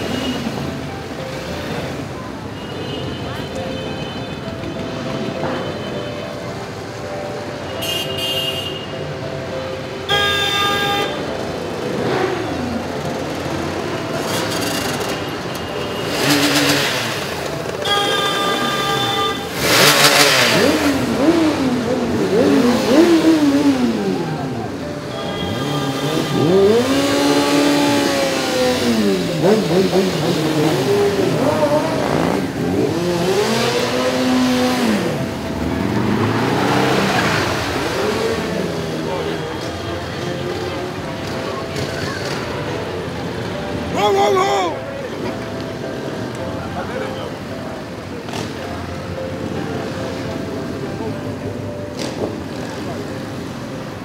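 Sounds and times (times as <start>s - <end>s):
motorcycle engines revving: 0.0s - 2.3s, 11.1s - 54.0s
horn blasts: 17.7s - 21.4s, 25.0s - 28.2s.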